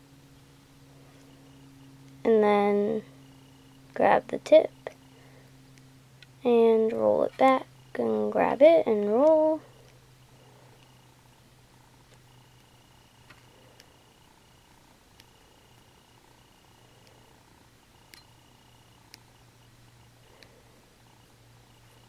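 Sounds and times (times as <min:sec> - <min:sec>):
low steady hum: 0:00.0 - 0:22.0.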